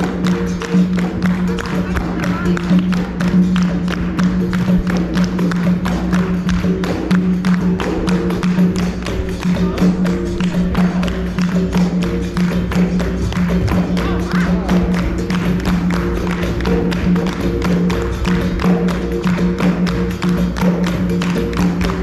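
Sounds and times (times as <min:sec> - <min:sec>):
hand drum: 0:00.0 - 0:22.0
hand-clapping: 0:00.0 - 0:22.0
percussion: 0:00.0 - 0:22.0.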